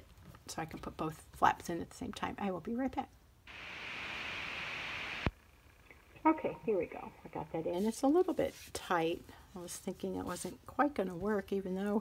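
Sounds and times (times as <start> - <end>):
steady hiss: 3.5 - 5.3.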